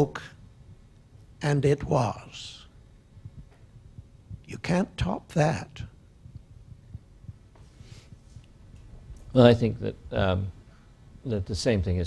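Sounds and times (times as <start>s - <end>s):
microphone handling thuds: 3.2s - 4.5s
soft breath: 7.5s - 8.6s.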